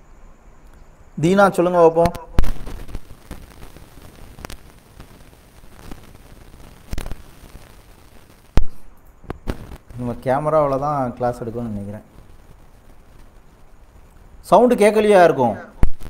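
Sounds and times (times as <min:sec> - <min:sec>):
faint background noise: 0:00.0 - 0:16.0.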